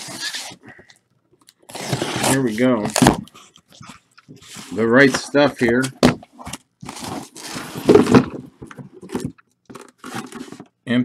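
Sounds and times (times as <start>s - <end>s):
cardboard scraping and crackling: 1.7s - 3.4s, 4.4s - 10.7s.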